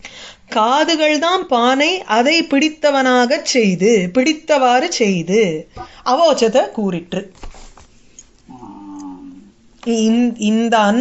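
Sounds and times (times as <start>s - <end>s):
faint held vocal sound: 8.5s - 9.6s.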